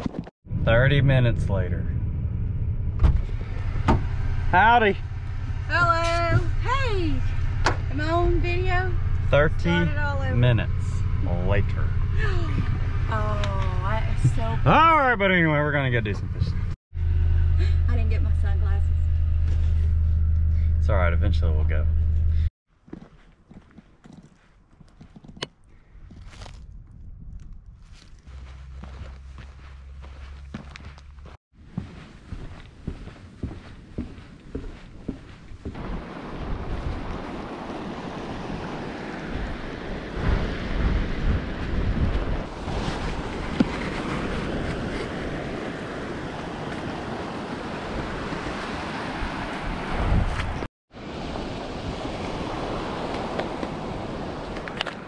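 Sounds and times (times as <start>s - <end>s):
wind buffeting microphone: 25.2s - 30.1s, 31.7s - 55.0s
surf washing on beach: 35.7s - 55.0s.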